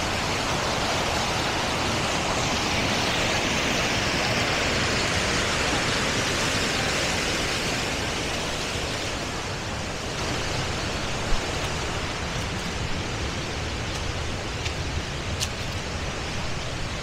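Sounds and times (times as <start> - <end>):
waterfall rushing: 0.0 - 17.0.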